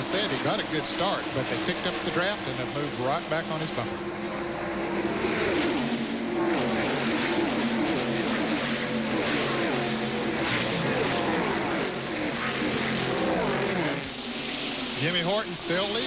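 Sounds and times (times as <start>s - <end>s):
race car engines passing: 0.0s - 16.0s.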